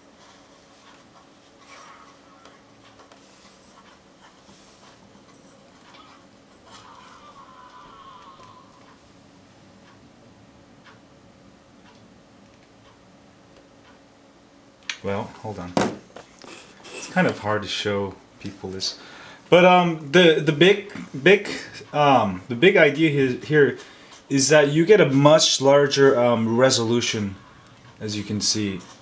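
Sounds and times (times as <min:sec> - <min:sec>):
film soundtrack from phone speakers: 0:00.0 - 0:14.1, 0:20.6 - 0:29.0
low steady hum: 0:00.0 - 0:29.0.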